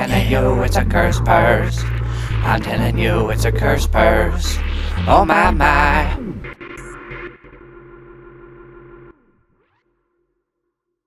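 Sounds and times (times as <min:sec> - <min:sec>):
backing music: 0:00.0 - 0:09.0.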